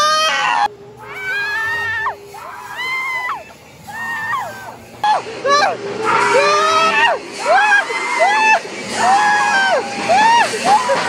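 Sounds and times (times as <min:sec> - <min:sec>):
high-pitched scream: 0:00.0 - 0:11.0
angle grinder grinding metal: 0:01.0 - 0:11.0.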